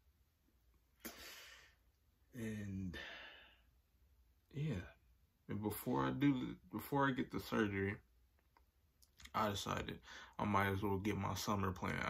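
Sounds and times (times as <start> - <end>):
man sighing: 2.6 - 3.6.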